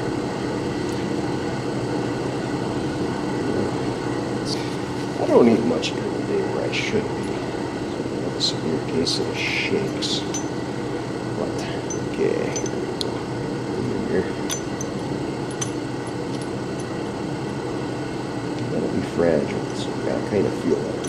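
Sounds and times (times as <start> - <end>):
steady background hum: 0.0 - 21.0.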